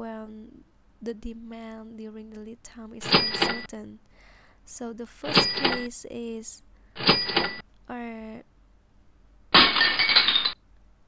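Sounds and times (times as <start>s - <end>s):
burst with clinking ring: 7.0s - 7.6s, 9.6s - 10.6s.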